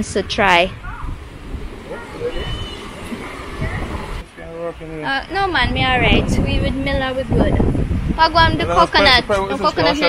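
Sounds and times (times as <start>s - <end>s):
wind buffeting microphone: 0.0s - 10.0s
man talking: 3.7s - 5.2s, 8.5s - 10.0s.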